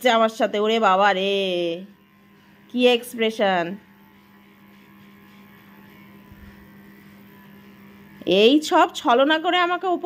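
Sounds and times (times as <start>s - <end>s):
electric pet trimmer humming: 0.0s - 10.0s.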